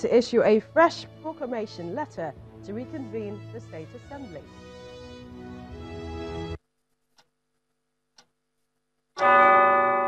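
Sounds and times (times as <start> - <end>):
bell-like chime ringing: 9.2 - 10.0.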